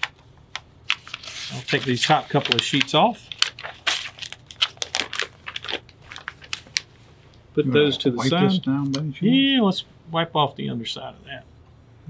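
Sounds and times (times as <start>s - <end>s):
paper rustling and crinkling: 0.8s - 7.1s.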